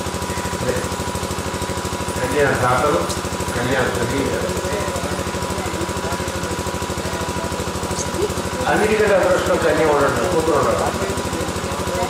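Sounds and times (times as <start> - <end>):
pulsing low machine drone: 0.0 - 12.0.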